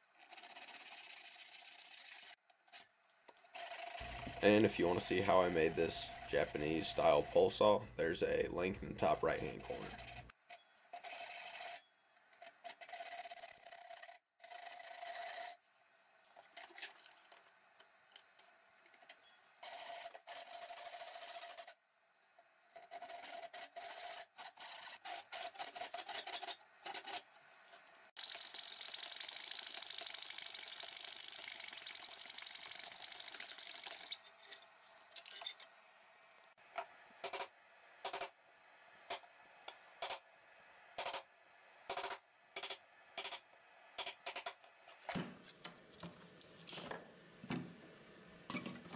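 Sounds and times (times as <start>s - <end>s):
coping saw fast strokes: 0.2s - 2.4s, 4.0s - 7.7s.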